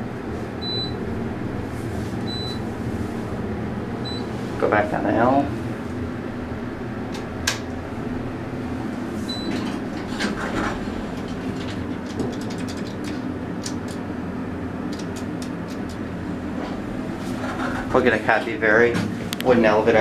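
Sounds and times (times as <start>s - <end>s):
elevator hum: 0.0s - 20.0s
elevator clicks and rattles: 9.3s - 14.1s, 14.9s - 16.1s.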